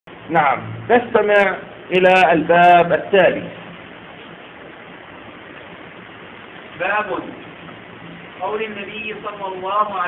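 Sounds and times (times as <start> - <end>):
steady background hiss: 0.1 - 10.0.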